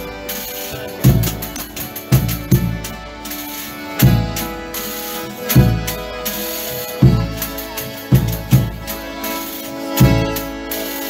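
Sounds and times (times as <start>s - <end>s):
bass drum beats: 0.0s - 3.2s, 4.0s - 4.7s, 5.4s - 6.2s, 7.0s - 9.1s, 10.0s - 10.6s
strummed stringed instruments: 0.0s - 11.0s.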